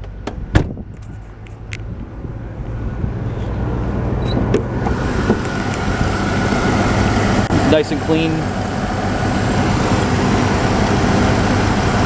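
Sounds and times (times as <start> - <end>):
car engine idling: 0.9 - 12.0.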